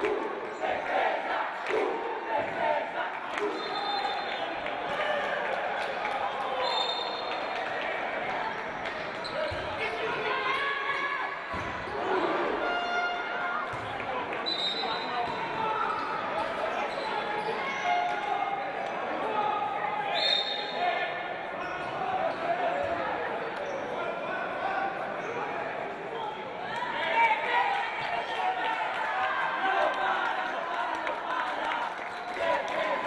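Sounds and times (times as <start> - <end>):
voices echoing in a hall: 0.0 - 33.0.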